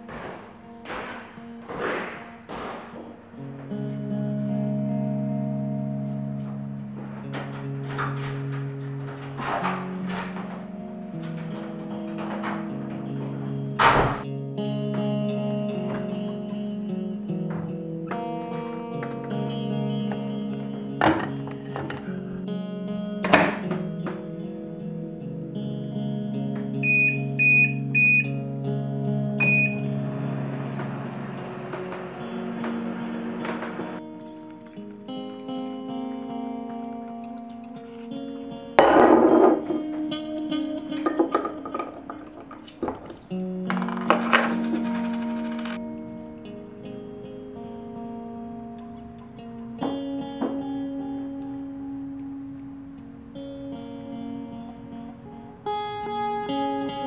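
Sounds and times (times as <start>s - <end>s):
guitar music: 0.0s - 57.0s
microwave keypad beeps: 26.8s - 28.3s, 29.4s - 30.7s.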